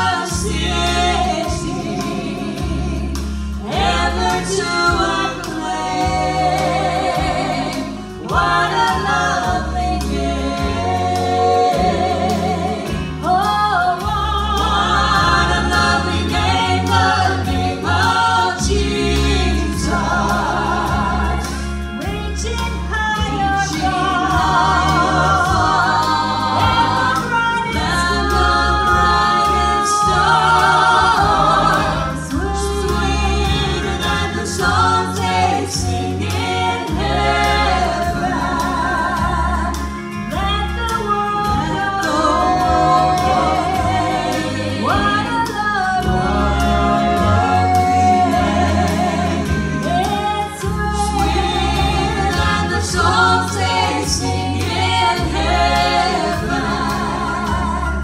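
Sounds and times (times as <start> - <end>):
gospel quartet singing in harmony: 0.0 - 58.0
steady bass notes: 0.0 - 58.0.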